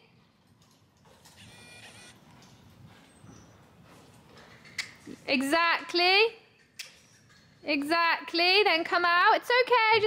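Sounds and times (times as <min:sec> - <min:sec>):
hoofbeats on sand: 0:02.3 - 0:04.5.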